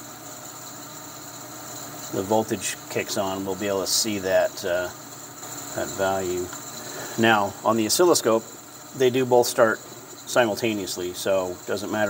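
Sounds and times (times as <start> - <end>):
machinery hiss: 0.9 - 12.0.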